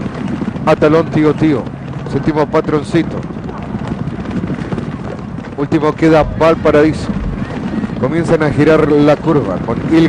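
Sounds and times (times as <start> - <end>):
horses galloping hoofbeats: 0.0 - 10.0.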